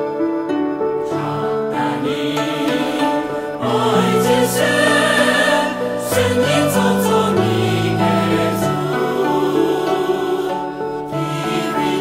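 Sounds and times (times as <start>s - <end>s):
bowed string accompaniment: 0.0s - 12.0s
choir singing gospel: 1.0s - 12.0s.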